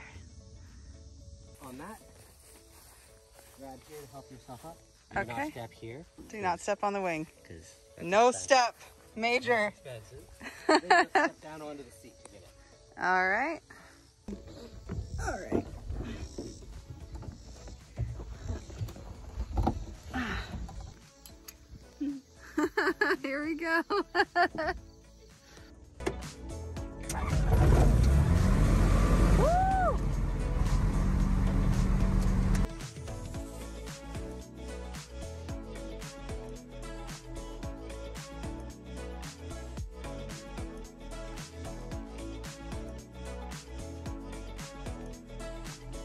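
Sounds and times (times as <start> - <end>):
faint music: 0.0 - 28.6.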